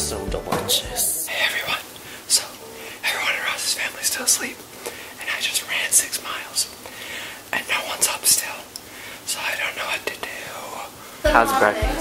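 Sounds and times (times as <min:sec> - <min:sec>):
man whispering: 0:01.0 - 0:04.6, 0:05.2 - 0:06.8, 0:07.4 - 0:11.8.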